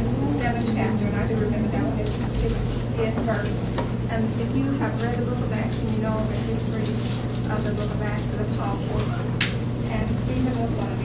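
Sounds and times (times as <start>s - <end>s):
low electrical hum: 0.0s - 11.0s
woman speaking: 0.0s - 11.0s.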